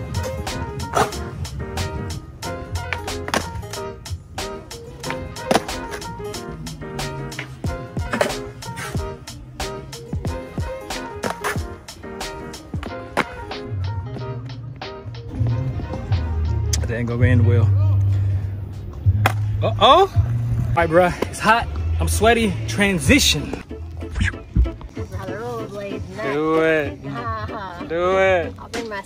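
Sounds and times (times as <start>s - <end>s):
skateboard wheels rolling: 0.0s - 16.5s
music with a beat: 0.0s - 16.8s
skateboard clacking on ground: 2.8s - 3.7s, 5.0s - 6.3s, 7.3s - 9.1s, 28.6s - 29.0s.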